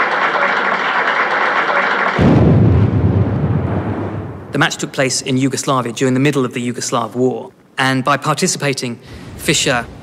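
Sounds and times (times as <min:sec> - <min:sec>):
explosion boom: 0:02.2 - 0:04.7
steady noisy hiss: 0:03.9 - 0:10.0.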